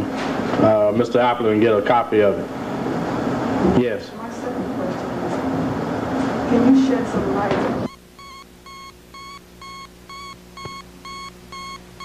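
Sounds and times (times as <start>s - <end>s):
room noise rumble: 0.0s - 12.0s.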